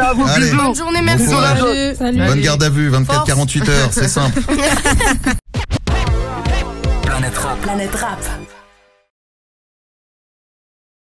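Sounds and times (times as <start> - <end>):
turntable scratches: 5.5 - 8.5
hip-hop beat with bass hits: 5.5 - 8.8.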